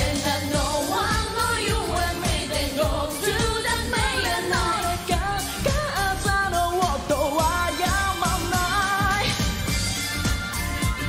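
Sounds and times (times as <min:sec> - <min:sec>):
woman singing: 0:00.0 - 0:09.6
backing band with drum beat: 0:00.0 - 0:11.0.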